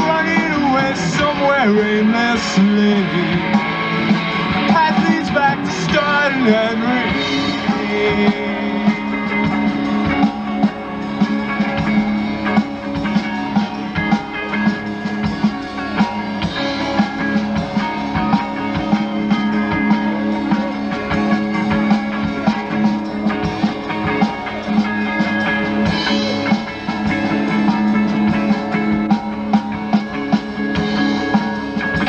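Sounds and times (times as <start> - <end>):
drum kit: 0.0 - 32.0
electric guitars: 0.0 - 32.0.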